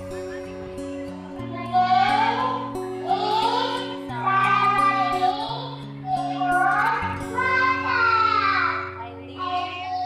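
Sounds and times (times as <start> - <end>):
musical backing with chords: 0.0 - 10.0
child singing into microphone: 1.5 - 10.0.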